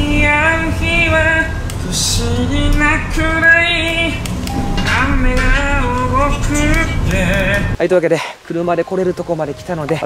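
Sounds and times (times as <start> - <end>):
person singing slow melody: 0.0 - 7.8
steady low rumble: 0.0 - 7.8.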